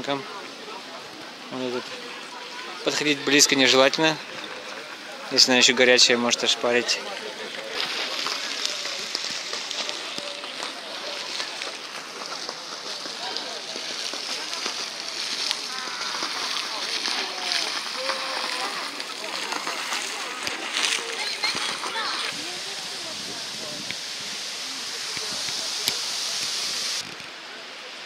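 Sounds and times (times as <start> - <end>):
people talking: 0.0 - 28.0
water rushing: 0.0 - 28.0.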